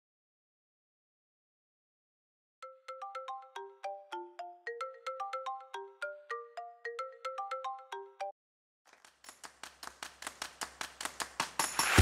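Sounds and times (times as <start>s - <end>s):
smartphone alarm melody: 2.6s - 8.3s.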